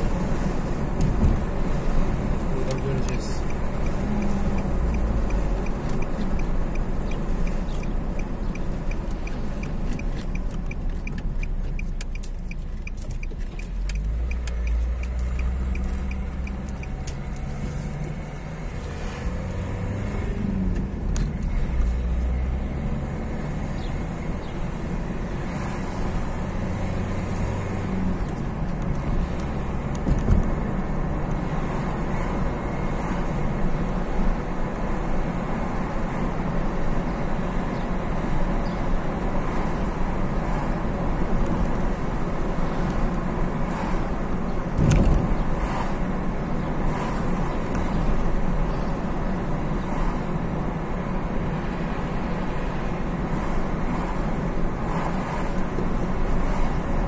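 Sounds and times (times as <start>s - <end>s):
engine and tyre rumble: 0.0s - 57.0s
turn signal clicking: 2.3s - 18.2s.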